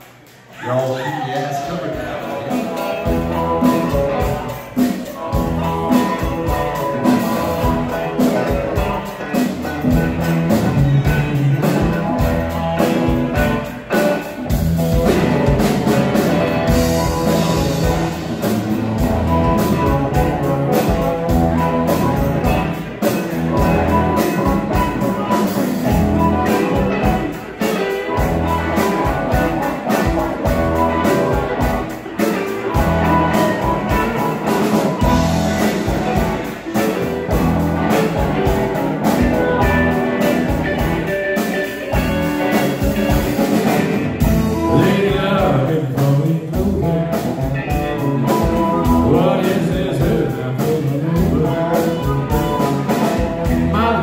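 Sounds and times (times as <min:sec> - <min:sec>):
electric guitars: 0:00.0 - 0:54.0
keyboard: 0:00.0 - 0:54.0
bass guitar: 0:01.9 - 0:54.0
drum kit beat: 0:01.9 - 0:54.0.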